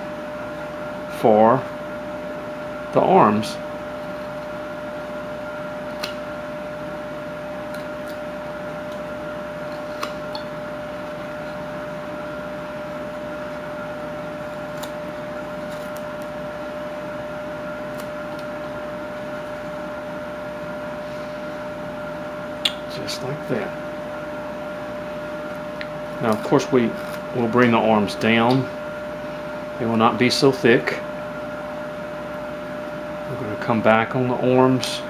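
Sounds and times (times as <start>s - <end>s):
steady hum: 0.0s - 35.0s
knife carving wood clicks: 5.9s - 6.2s, 7.7s - 8.2s.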